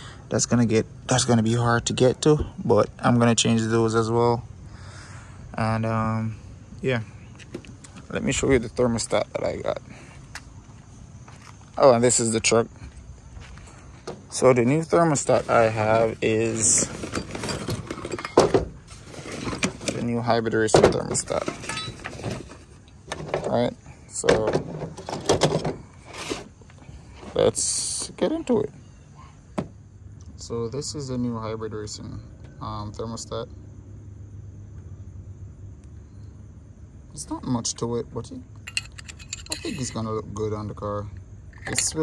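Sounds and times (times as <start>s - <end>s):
tools clinking in a bag: 16.6s - 18.5s, 21.3s - 22.4s, 38.6s - 40.1s.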